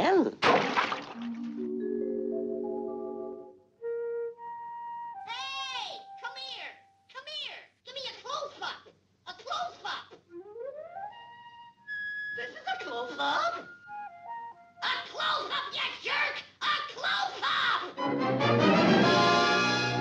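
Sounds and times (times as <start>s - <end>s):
cartoon sound effects: 5.2s - 6.8s
squawky wordless voice noises: 5.2s - 10.3s, 12.4s - 13.8s, 14.8s - 18.0s.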